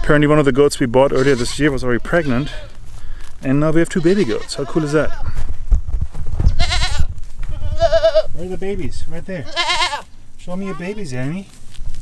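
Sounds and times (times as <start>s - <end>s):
goats bleating: 0.0s - 0.2s, 1.0s - 2.9s, 3.6s - 5.4s, 6.6s - 8.4s, 9.4s - 10.9s.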